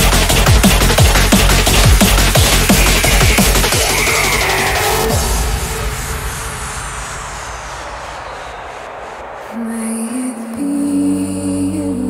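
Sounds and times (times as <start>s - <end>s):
hissing noise sweep whoosh: 2.7s - 10.1s.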